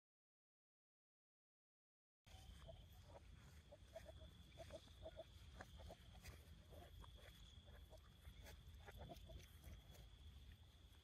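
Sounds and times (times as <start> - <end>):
poultry calls: 2.3 - 10.2.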